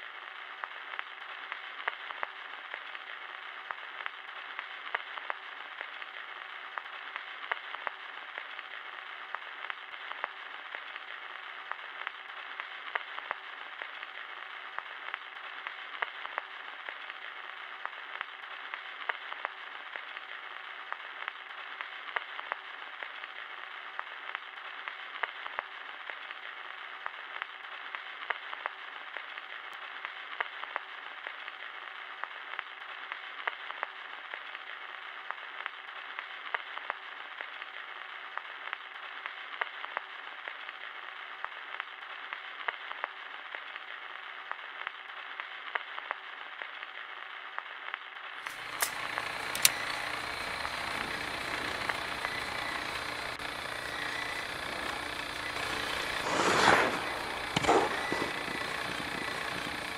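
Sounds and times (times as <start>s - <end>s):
record surface hiss and crackle: 0.0s - 59.9s.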